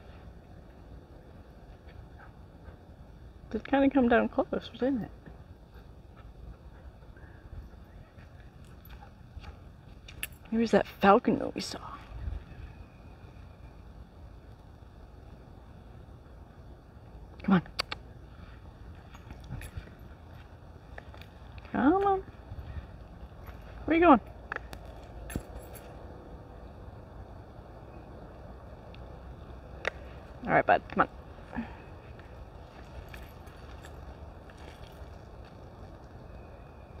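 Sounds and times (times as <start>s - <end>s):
wind rumble on microphone: 11.4s - 17.4s, 18.6s - 37.0s.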